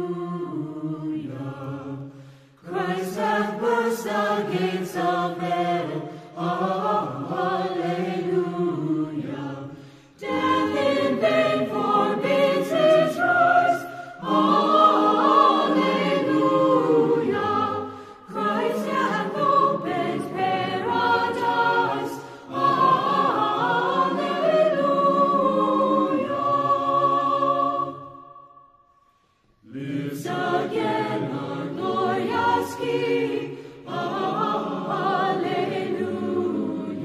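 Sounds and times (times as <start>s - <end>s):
choir singing unaccompanied: 0.0s - 28.7s, 29.6s - 37.0s.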